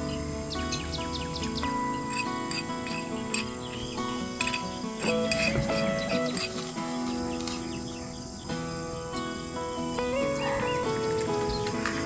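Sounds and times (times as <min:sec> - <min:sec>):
high chirping sounds: 0:00.0 - 0:12.0
instrumental background music: 0:00.0 - 0:12.0.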